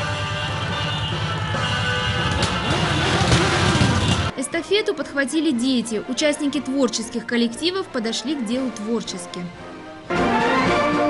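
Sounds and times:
motorcycle engines rumbling: 0.0 - 4.4
music playing: 0.0 - 11.0.

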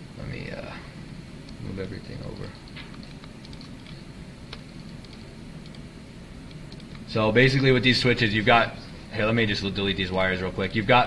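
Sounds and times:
low steady hum: 0.0 - 11.0
mouse and keyboard clicks: 2.4 - 5.8.

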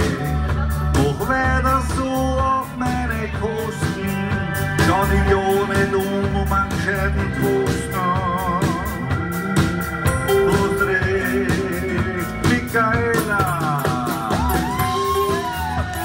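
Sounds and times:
live rock band playing: 0.0 - 16.0
sliding lead guitar notes: 0.0 - 16.0.

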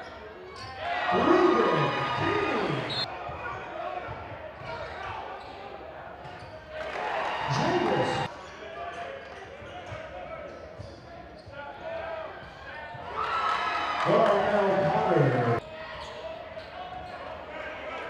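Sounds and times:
voices calling out: 0.8 - 3.1.

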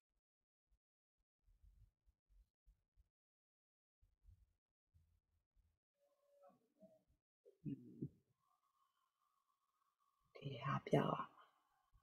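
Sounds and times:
person's voice: 10.4 - 11.3.

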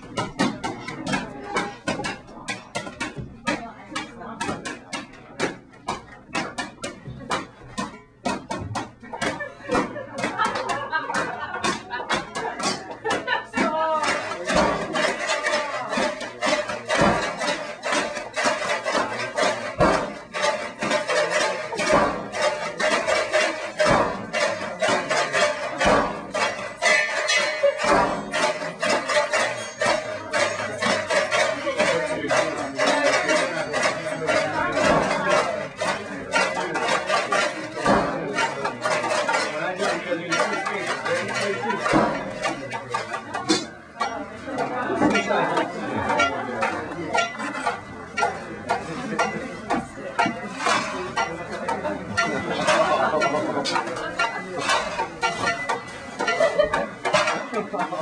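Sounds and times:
objects knocking and clattering: 0.0 - 58.0
voices: 0.0 - 58.0
music: 13.8 - 42.2.

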